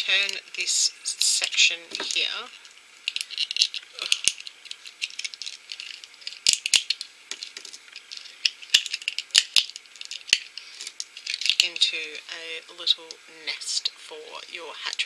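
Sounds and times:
plastic shell cracking and snapping: 0:03.1 - 0:11.6.

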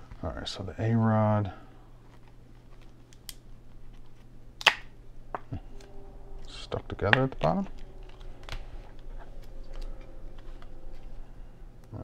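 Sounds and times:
sharp plastic snap: 0:04.6 - 0:04.9
plastic packaging rustling: 0:06.5 - 0:11.3.

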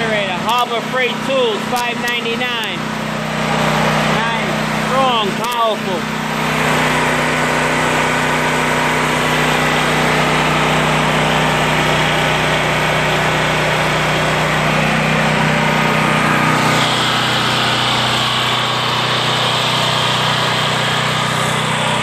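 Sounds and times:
generator engine running: 0:00.0 - 0:22.0.

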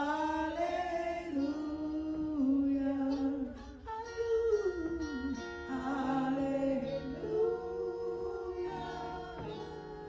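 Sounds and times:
woman singing into microphone: 0:00.0 - 0:10.0.

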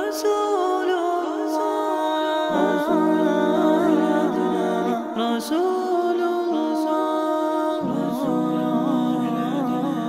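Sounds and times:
layered voices humming a melody: 0:02.5 - 0:05.6.

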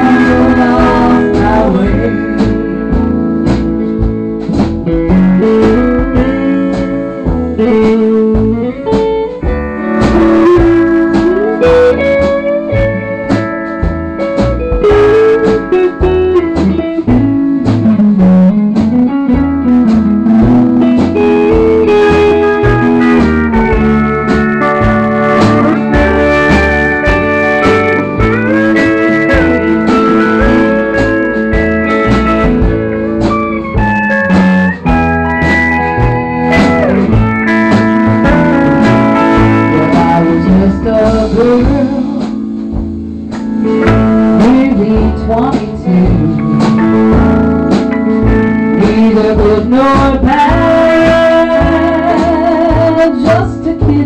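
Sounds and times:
country band playing: 0:00.0 - 0:54.0
pedal steel guitar sliding: 0:05.0 - 0:41.6.

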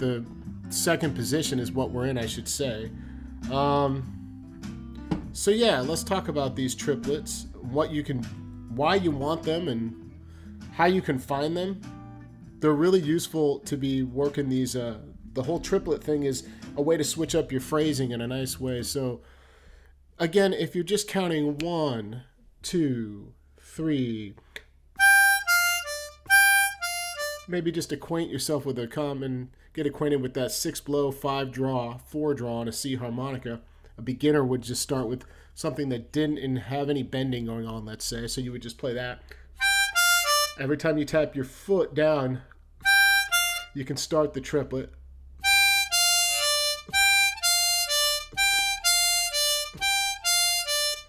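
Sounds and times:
harmonica single notes: 0:25.0 - 0:27.5, 0:39.6 - 0:40.8, 0:42.8 - 0:43.8, 0:45.4 - 0:51.0.

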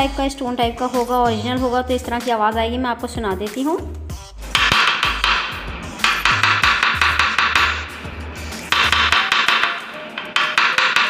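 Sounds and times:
stone roller tapping on hard surface: 0:04.6 - 0:08.0, 0:08.6 - 0:11.0.

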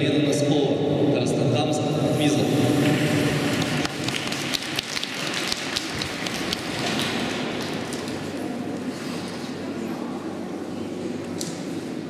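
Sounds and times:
steady background hiss: 0:00.0 - 0:12.0
audience hand clapping: 0:03.4 - 0:08.2.

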